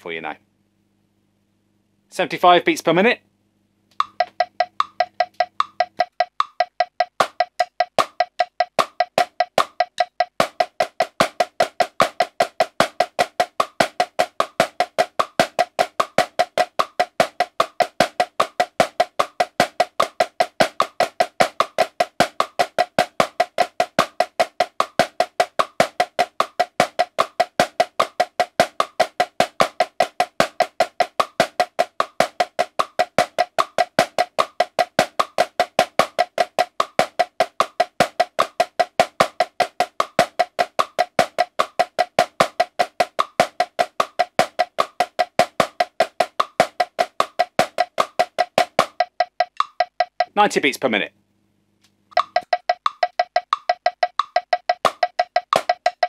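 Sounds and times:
marching snare drum: 0:04.0 - 0:50.6, 0:52.2 - 0:56.0.

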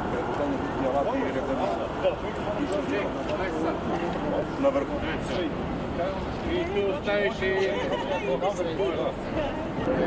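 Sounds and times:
city noise: 0:00.0 - 0:10.0
indistinct talk of people: 0:00.0 - 0:10.0.

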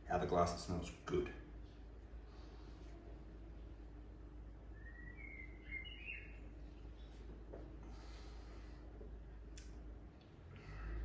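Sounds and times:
low room hum: 0:00.0 - 0:11.0
bird chirping: 0:04.6 - 0:07.4.

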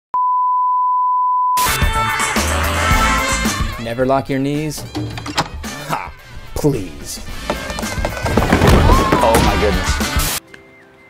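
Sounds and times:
steady test tone beep: 0:00.1 - 0:01.6.

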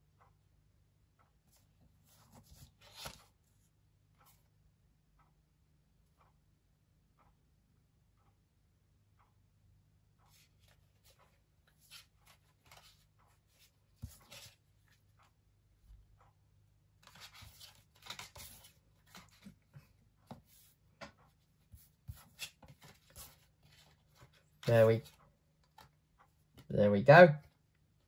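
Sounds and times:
trading cards rustling and tapping: 0:02.1 - 0:03.4, 0:10.3 - 0:15.0, 0:17.0 - 0:26.7.

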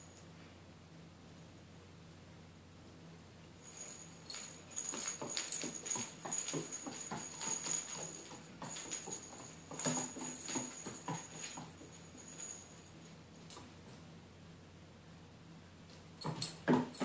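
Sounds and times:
small bell jingling: 0:03.6 - 0:14.0, 0:16.2 - 0:17.0
claws clicking on wooden floor: 0:03.7 - 0:12.7.

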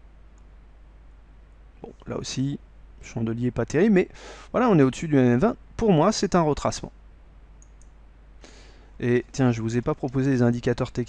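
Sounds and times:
low electrical hum: 0:00.0 - 0:11.0
computer mouse click: 0:07.6 - 0:08.0.

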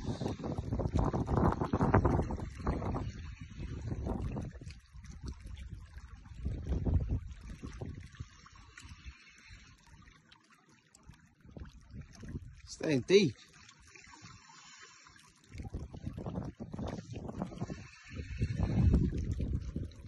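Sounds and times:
wind buffeting microphone: 0:00.0 - 0:09.0, 0:11.4 - 0:12.8, 0:15.5 - 0:20.0.

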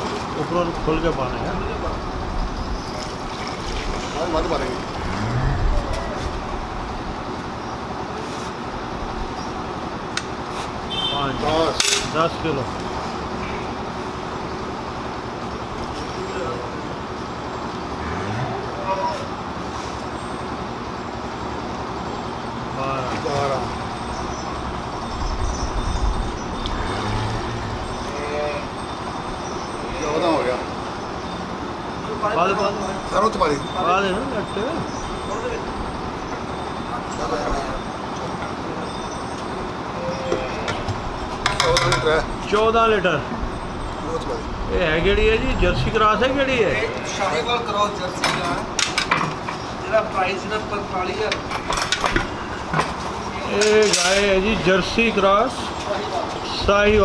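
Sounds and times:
faint voices: 0:26.6 - 0:48.8.

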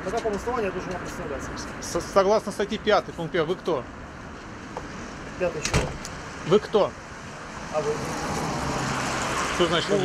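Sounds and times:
vehicle passing: 0:00.7 - 0:10.0.

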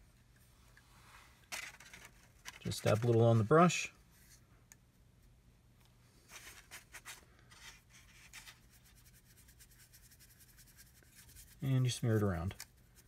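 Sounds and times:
makeup brush scratching on plastic: 0:06.3 - 0:13.0.

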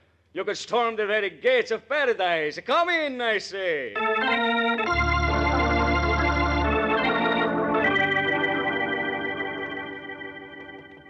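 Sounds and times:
organ chords over deep bass: 0:04.0 - 0:11.0.

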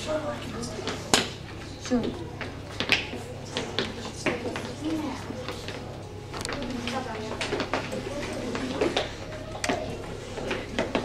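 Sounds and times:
faint voices: 0:00.0 - 0:11.0
steady low hum: 0:00.0 - 0:11.0.

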